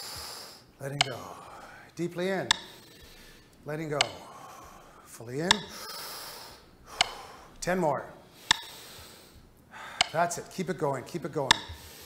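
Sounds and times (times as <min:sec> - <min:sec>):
forceful breathing: 0:00.0 - 0:12.0
pacing beat click: 0:00.0 - 0:12.0.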